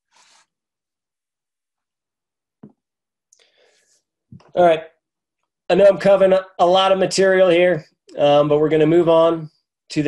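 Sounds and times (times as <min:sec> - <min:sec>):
faint breath: 0:00.0 - 0:00.6, 0:03.4 - 0:04.2
soft tap: 0:02.6 - 0:02.8.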